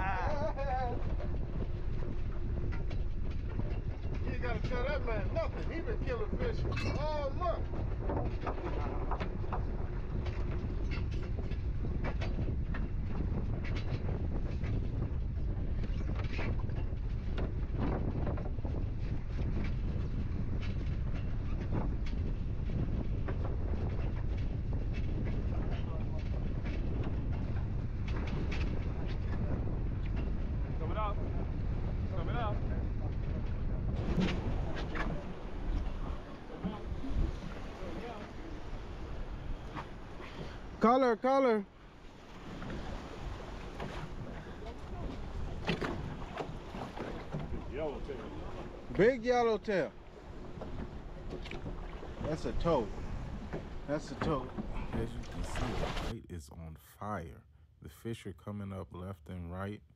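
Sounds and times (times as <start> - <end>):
wind buffeting microphone: 0.0 - 56.2.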